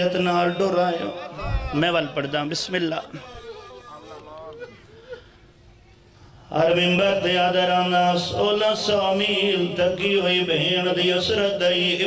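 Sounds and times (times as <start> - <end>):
man chanting into a microphone: 6.5 - 12.0.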